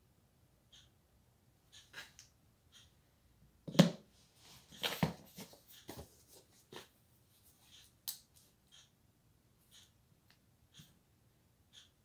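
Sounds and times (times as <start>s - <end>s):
notebook rustling: 4.4s - 6.9s.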